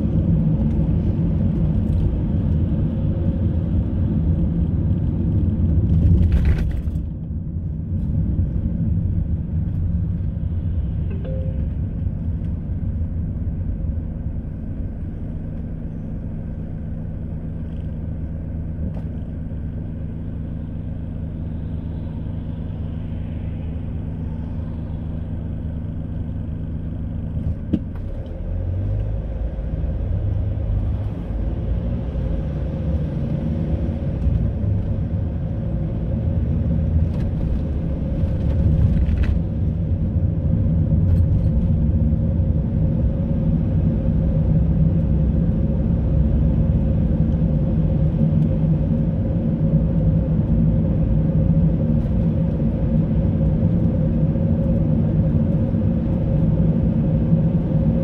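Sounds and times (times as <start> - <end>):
car engine hum: 0.0 - 58.0
road noise: 0.0 - 58.0.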